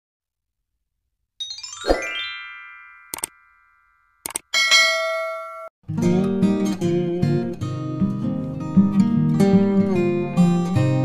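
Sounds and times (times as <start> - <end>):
ringing chime: 1.4 - 5.7
short clicks: 3.1 - 3.4, 4.2 - 4.5
strummed acoustic guitar music: 5.9 - 11.0.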